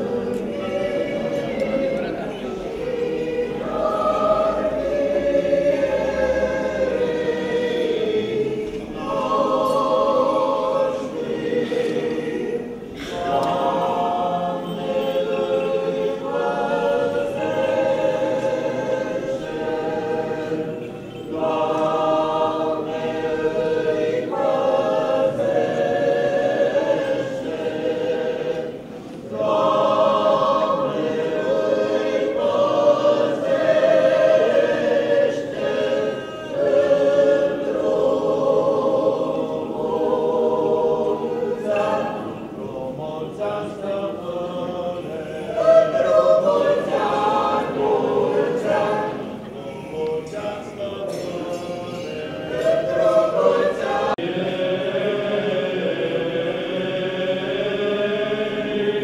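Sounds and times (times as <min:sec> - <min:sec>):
choir chanting unaccompanied: 0:00.0 - 0:59.0.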